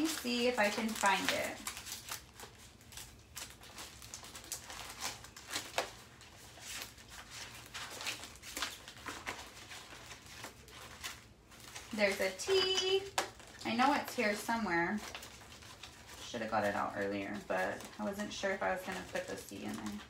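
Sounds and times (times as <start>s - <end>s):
paper rustling: 0.0s - 20.0s.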